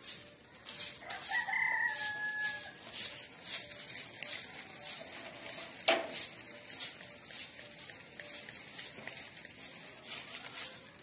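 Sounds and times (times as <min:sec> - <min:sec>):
rooster crowing: 0:01.0 - 0:02.8.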